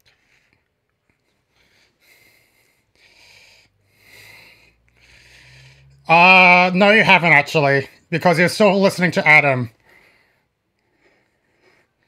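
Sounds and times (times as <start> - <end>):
soft breathing: 0.0 - 6.1, 9.7 - 12.0.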